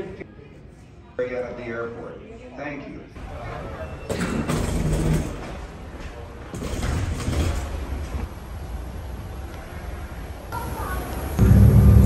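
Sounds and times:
low steady rumble: 11.4s - 12.0s.

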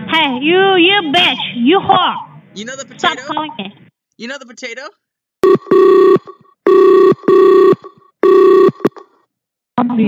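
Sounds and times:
telephone ringing: 5.4s - 9.2s.

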